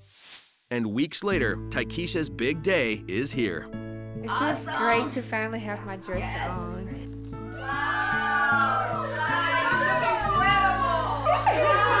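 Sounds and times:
background music: 0:00.7 - 0:12.0
women squealing and shrieking: 0:06.1 - 0:06.8, 0:07.5 - 0:12.0.

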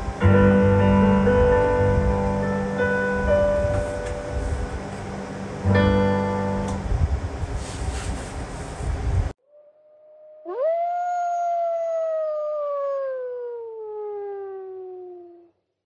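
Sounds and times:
keyboard music: 0:00.0 - 0:07.5
room noise: 0:00.0 - 0:09.4
long howl: 0:09.4 - 0:15.6.

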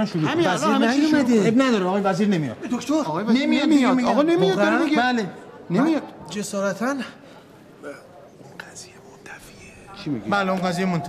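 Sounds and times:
faint whispering voice: 0:07.8 - 0:10.2.

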